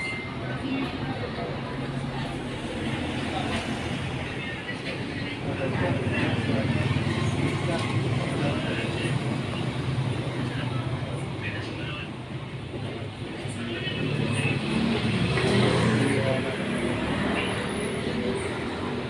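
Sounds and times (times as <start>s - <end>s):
people talking indistinctly: 0.0s - 19.0s
road traffic rumble: 0.0s - 19.0s.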